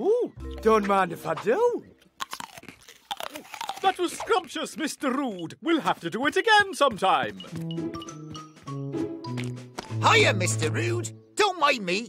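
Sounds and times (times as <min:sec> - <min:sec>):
cartoon crunching and chomping: 0:02.0 - 0:05.4
man's voice: 0:10.0 - 0:12.0.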